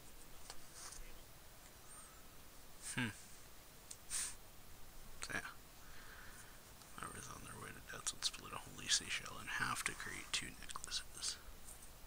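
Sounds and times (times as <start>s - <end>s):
soft whispered speech: 5.2s - 5.6s, 6.9s - 11.5s.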